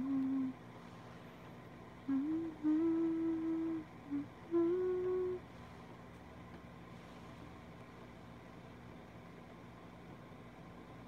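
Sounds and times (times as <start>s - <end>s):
woman humming: 0.0s - 0.6s, 2.0s - 5.5s.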